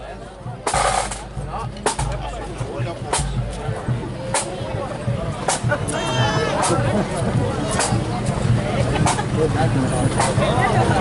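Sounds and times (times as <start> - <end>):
indistinct chatter: 0.0 - 11.0.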